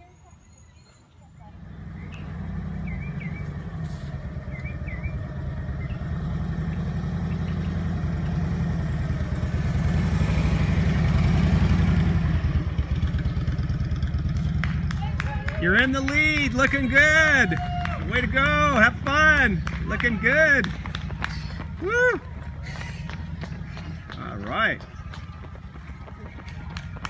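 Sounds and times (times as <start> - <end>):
motorcycle passing by: 1.3 - 27.0.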